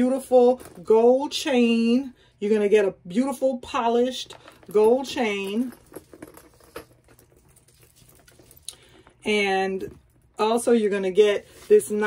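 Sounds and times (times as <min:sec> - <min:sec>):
bag strap and chain clicking: 0:04.4 - 0:10.4.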